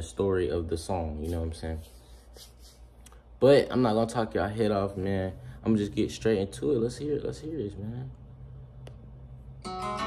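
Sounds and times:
low steady hum: 0:00.0 - 0:10.0
guitar chord ringing: 0:09.6 - 0:10.0.

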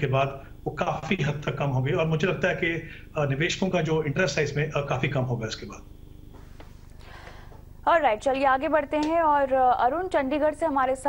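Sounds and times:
low pulsing buzzing hum: 0:00.0 - 0:11.0
woman speaking: 0:07.9 - 0:11.0.

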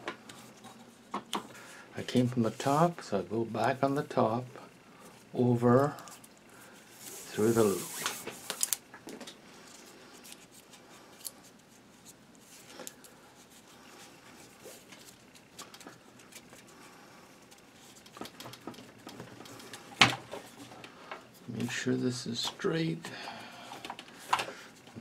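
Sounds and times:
cord rustling and scraping: 0:05.9 - 0:21.8.

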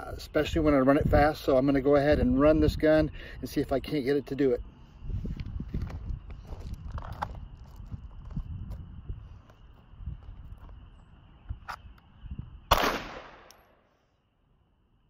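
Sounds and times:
low rumbling wind: 0:00.0 - 0:13.9
pistol shot with echo: 0:12.7 - 0:13.8.

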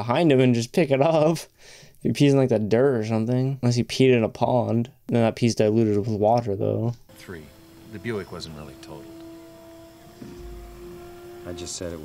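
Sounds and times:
sustained background score note: 0:07.1 - 0:12.0.

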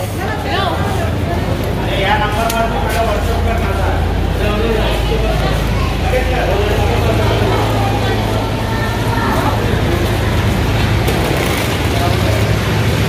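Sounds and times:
indistinct voices: 0:00.0 - 0:13.0
low engine rumble: 0:00.0 - 0:13.0.

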